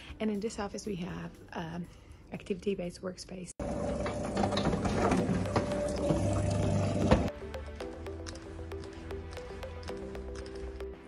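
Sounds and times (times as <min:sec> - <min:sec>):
juicer motor hum: 0:03.6 - 0:07.3.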